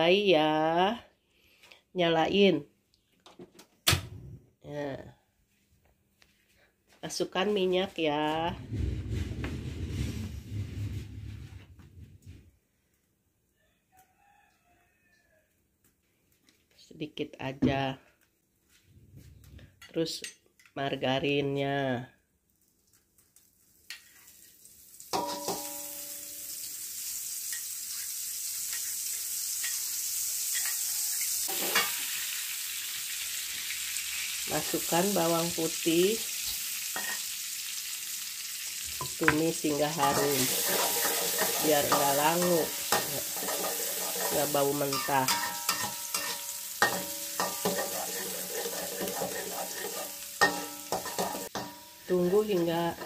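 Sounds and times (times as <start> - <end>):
rooster crowing faintly: 13.5 - 15.7
garlic sizzling in oil: 22.6 - 53.0
spatula stirring in wok: 38.7 - 53.0.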